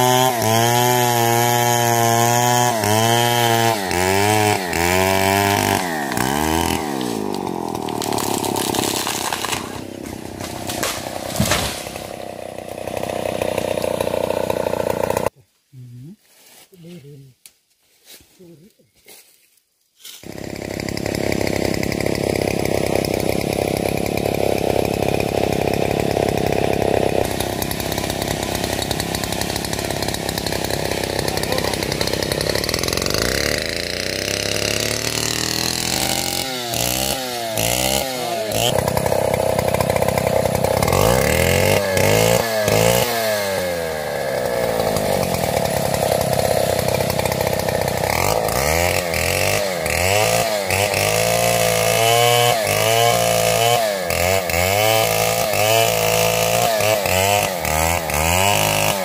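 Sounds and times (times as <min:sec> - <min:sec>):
chainsaw sawing into tree: 0:00.0 - 0:15.4, 0:20.2 - 0:59.0.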